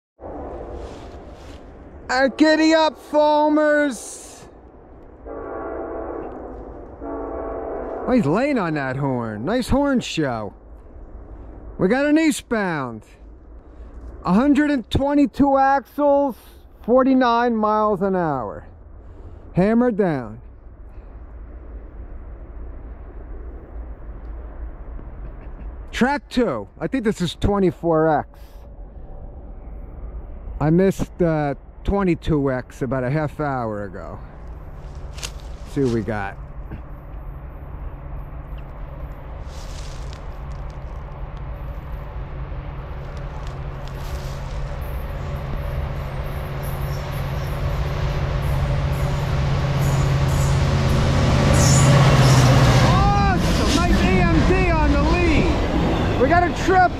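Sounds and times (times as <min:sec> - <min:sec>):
diesel locomotive engine drone: 0:00.2 - 0:56.9
distant freight train rumble: 0:00.2 - 0:56.9.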